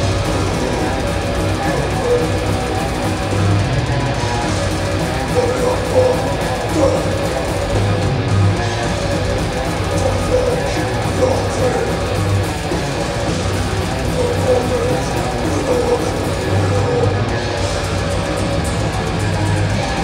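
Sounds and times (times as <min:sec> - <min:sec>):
death metal band playing: 0:00.0 - 0:20.0.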